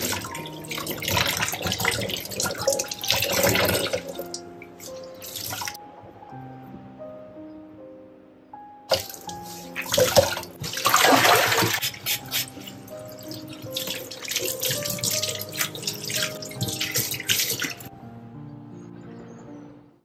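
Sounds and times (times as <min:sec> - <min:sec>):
tap water splashing into sink: 0:00.0 - 0:04.4, 0:08.9 - 0:12.4, 0:13.3 - 0:17.8
background music: 0:00.0 - 0:20.0
cloths wrung out by hand: 0:04.8 - 0:05.8, 0:08.9 - 0:17.9.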